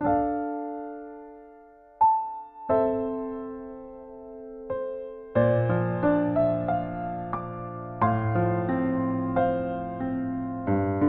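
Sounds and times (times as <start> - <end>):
gentle piano music: 0.0 - 11.0.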